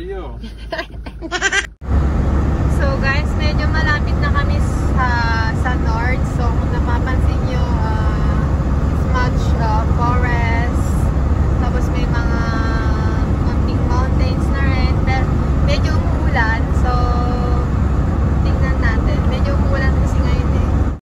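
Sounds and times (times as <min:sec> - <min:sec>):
vehicle engine and tyre rumble: 0:00.0 - 0:21.0.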